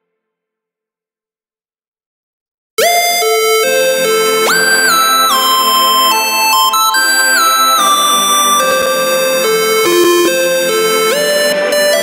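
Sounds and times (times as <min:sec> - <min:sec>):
gliding synth lead melody: 0:02.8 - 0:12.0.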